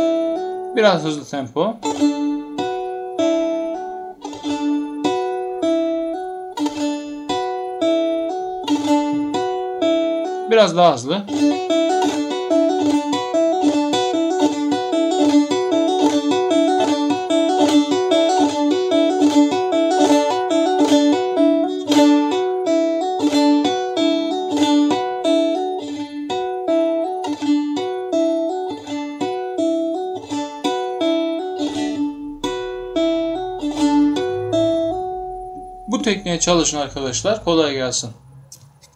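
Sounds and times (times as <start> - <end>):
lute strings struck by fingers: 1.6 - 10.5, 29.2 - 37.9.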